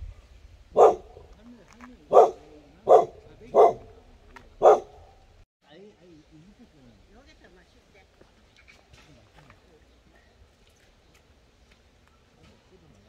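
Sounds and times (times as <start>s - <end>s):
dog barking: 0.8s - 1.3s, 2.1s - 4.0s, 4.6s - 5.3s.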